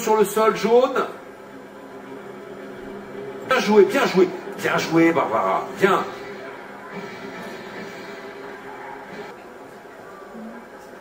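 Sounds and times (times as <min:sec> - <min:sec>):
faint murmur: 0:01.2 - 0:11.0.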